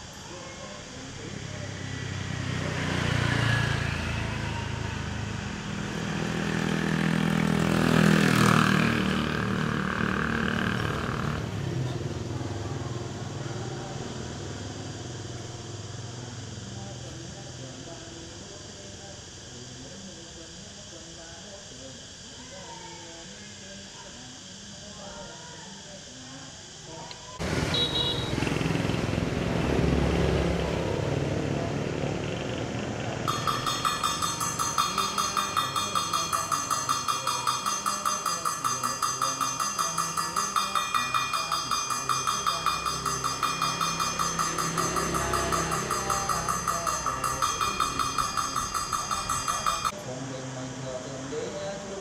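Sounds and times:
small hand bell ringing: 0:33.3 - 0:50.0.

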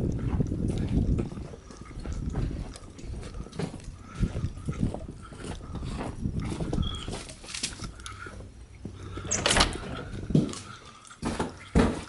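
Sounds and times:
steady low rumble: 0:00.0 - 0:10.8.

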